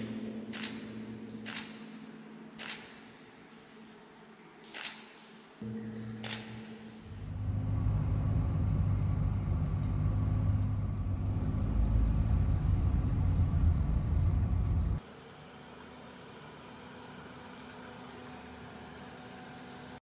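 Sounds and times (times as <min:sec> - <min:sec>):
car engine and road rumble: 0:07.1 - 0:15.0.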